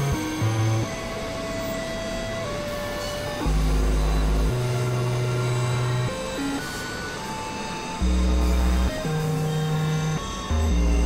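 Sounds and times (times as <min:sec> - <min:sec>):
synthesizer drone music: 0:00.0 - 0:11.0.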